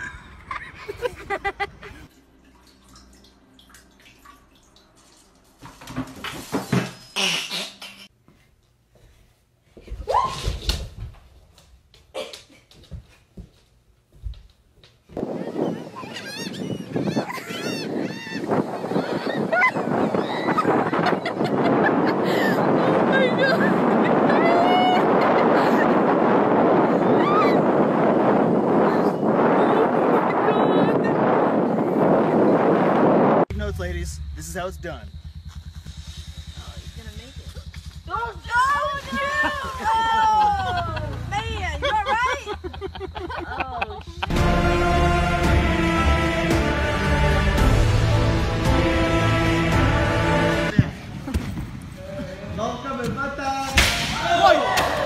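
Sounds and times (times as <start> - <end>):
wind: 0.0 - 8.2, 13.9 - 44.9, 48.6 - 55.0
gulls calling: 15.2 - 25.8.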